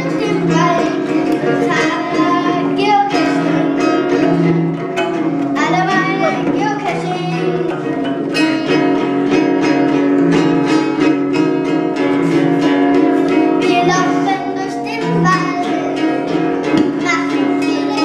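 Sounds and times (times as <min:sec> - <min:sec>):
child singing: 0:00.0 - 0:09.0, 0:13.4 - 0:18.0
acoustic guitar strummed: 0:00.0 - 0:18.0.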